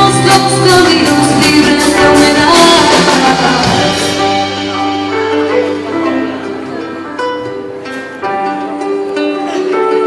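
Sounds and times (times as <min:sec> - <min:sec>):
live band playing slow song: 0:00.0 - 0:10.0
plucked acoustic guitar: 0:00.0 - 0:10.0.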